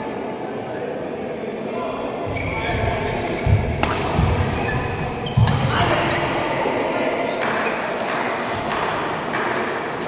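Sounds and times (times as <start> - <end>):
voices chattering: 0.0 - 8.7
racket hitting shuttlecock: 3.6 - 4.5.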